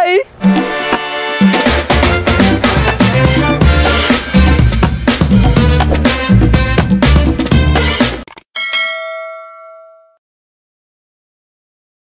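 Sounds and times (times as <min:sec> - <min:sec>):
bright notification bell chime: 0:08.6 - 0:10.2.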